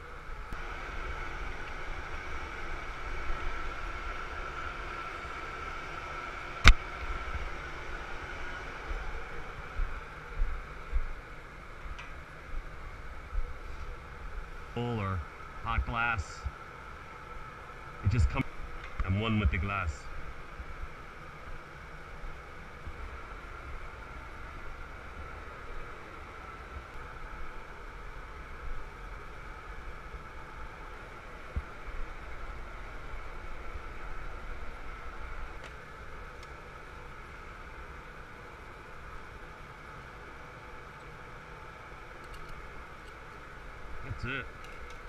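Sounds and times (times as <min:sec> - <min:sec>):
gas furnace roaring: 0:00.0 - 0:45.0
ventilation fans: 0:00.0 - 0:45.0.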